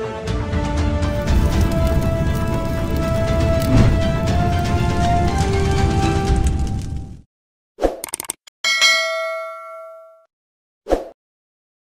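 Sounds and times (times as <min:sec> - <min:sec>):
bell-like ding: 0:08.6 - 0:10.3.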